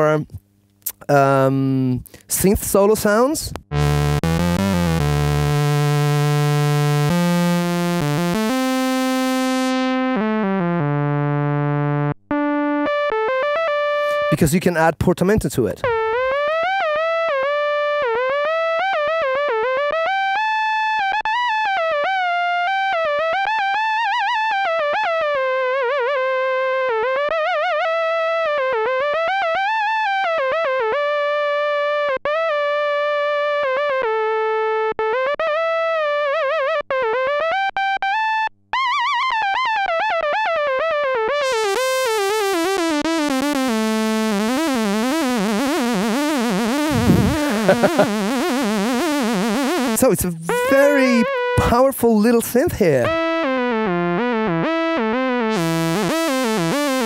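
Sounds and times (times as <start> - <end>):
synthesizer lead line: 3.6 - 10.9, 43.7 - 51.3.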